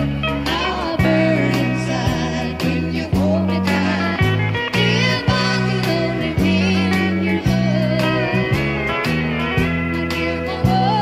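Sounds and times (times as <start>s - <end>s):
bass line: 0.0s - 11.0s
guitar: 0.0s - 11.0s
steel guitar gliding lead: 0.0s - 11.0s.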